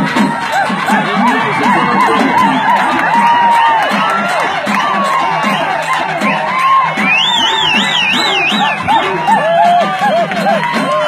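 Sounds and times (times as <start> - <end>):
crowd shouting and cheering: 0.0 - 11.0
folk music with drums and reed pipe: 0.0 - 11.0
high warbling trill: 0.8 - 4.7.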